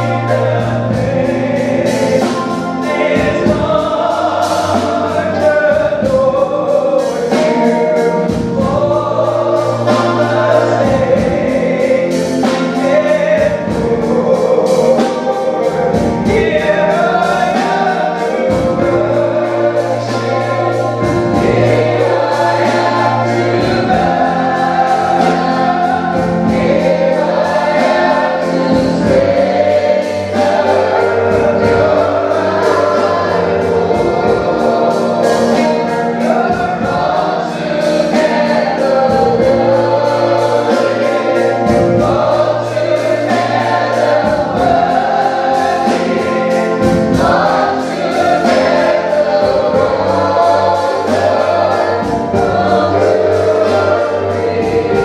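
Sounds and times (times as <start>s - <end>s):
backing singers: 0.0s - 55.0s
electric keyboard: 0.0s - 55.0s
lead singer: 0.0s - 55.0s
steady beat: 0.0s - 55.0s.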